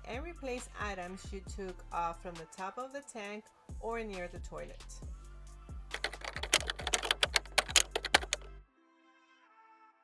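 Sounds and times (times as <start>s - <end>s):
music with bass beat: 5.0s - 8.5s
fast sharp clicks: 5.9s - 8.5s.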